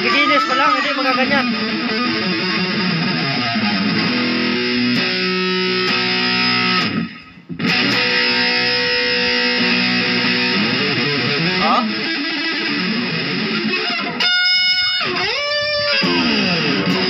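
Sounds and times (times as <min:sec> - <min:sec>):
electric guitar ringing chords: 0:00.0 - 0:17.0.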